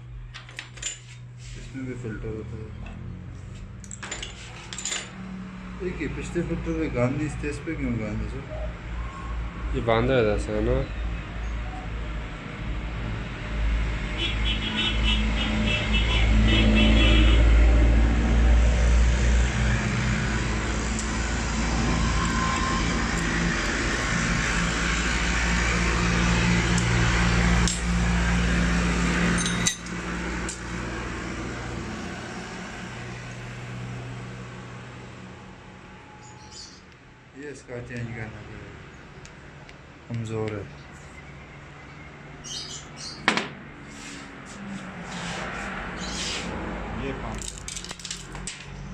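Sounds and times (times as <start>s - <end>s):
motor vehicle running: 0.0s - 8.4s, 11.8s - 37.0s, 37.8s - 48.9s.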